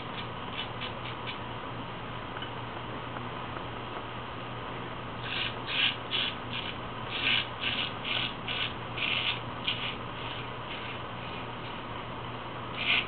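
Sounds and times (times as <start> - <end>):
razor scraping stubble: 5.2 - 11.5, 12.8 - 13.0.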